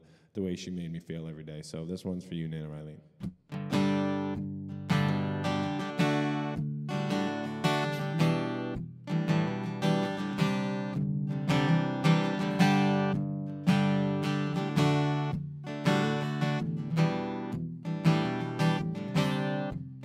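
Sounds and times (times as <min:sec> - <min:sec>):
acoustic guitar strummed chords: 0:03.5 - 0:20.0.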